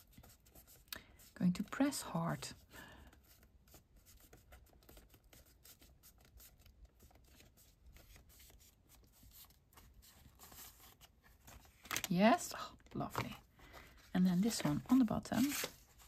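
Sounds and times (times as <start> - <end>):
paper rustling and ticking: 4.1 - 12.2.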